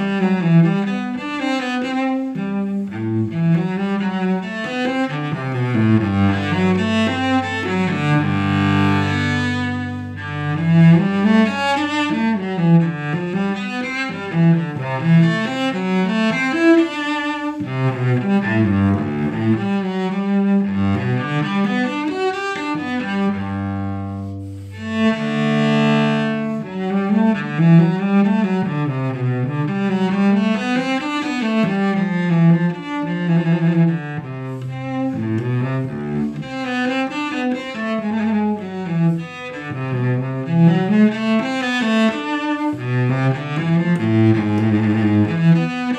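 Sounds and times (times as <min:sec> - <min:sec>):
solo cello bowed melody: 0:00.0 - 0:45.9.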